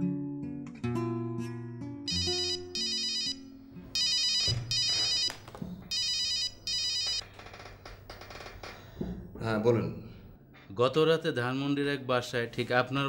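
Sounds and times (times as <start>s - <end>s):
mobile phone ringing: 2.1s - 7.2s.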